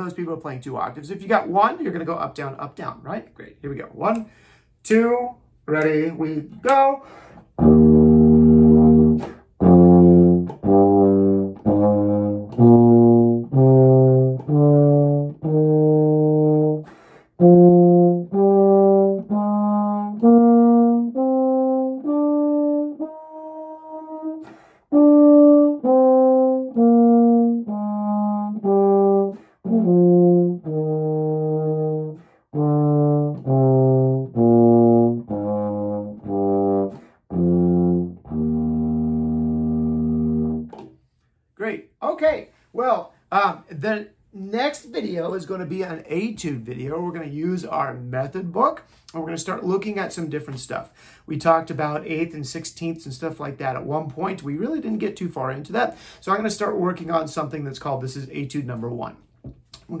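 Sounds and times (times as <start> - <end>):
euphonium playing a scale: 7.6 - 16.8, 17.4 - 40.7.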